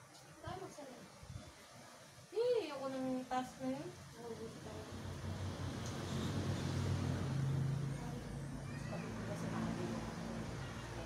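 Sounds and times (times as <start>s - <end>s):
low engine-like hum: 4.7s - 11.0s.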